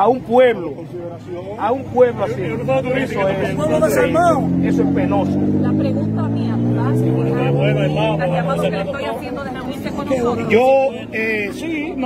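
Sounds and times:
people talking: 0.0 - 12.0
vehicle engine revving: 1.2 - 12.0.

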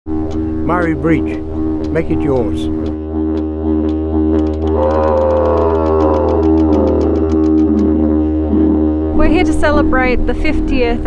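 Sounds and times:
didgeridoo drone: 0.1 - 11.0
fast even ticking: 0.1 - 11.0.

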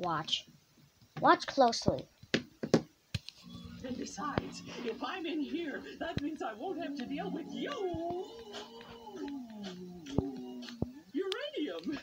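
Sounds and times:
cartoon voice humming note: 7.0 - 11.1.

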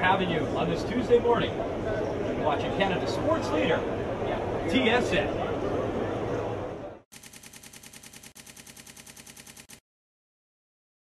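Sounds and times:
electronic stuttering pulses: 7.1 - 9.8.

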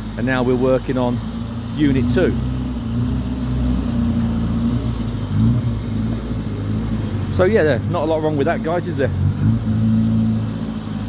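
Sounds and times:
car engine running at low speed: 0.0 - 11.0.

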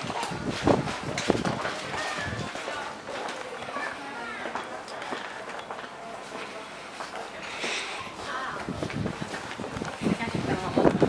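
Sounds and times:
faint voices of passers-by: 0.0 - 11.0
footsteps on stone paving: 0.0 - 11.0.

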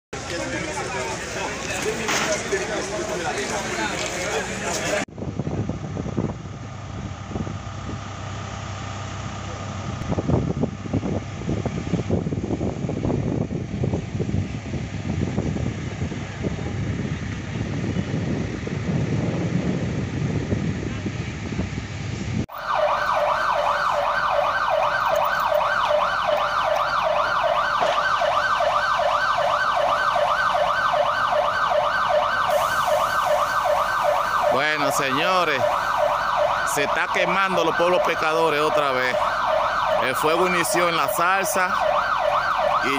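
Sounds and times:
rough outdoor rumbling: 0.1 - 42.9
siren wailing in yelp cycles: 22.5 - 42.9.

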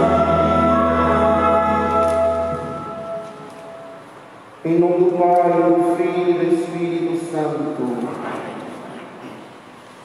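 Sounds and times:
choir singing a hymn: 0.0 - 3.2
low sustained accompaniment: 0.0 - 4.4.

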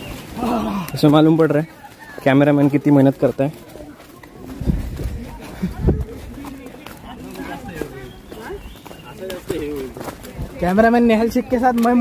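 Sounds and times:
men talking outdoors: 0.0 - 12.0.

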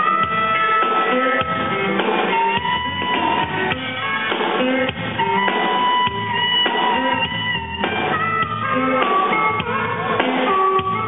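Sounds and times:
drums: 0.0 - 11.0
electric guitar bending note: 0.0 - 11.0.

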